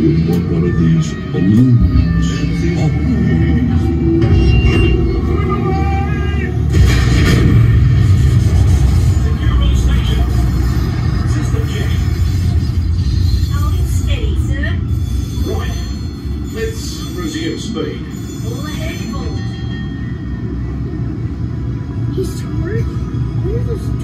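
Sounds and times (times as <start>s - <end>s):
deep sustained rumble: 0.0s - 16.8s.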